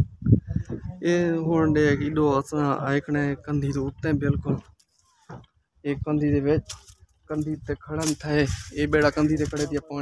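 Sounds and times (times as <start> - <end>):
man talking: 0.9 - 4.7, 5.8 - 10.0.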